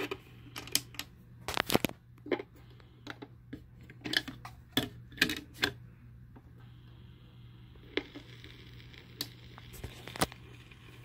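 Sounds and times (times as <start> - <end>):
vinyl record surface noise: 0.0 - 5.7, 6.3 - 11.0
low hum: 0.0 - 11.0.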